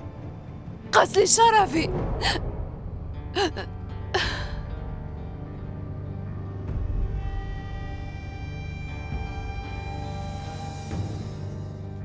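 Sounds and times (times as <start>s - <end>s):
soft background music: 0.0s - 12.0s
woman crying: 3.4s - 4.6s.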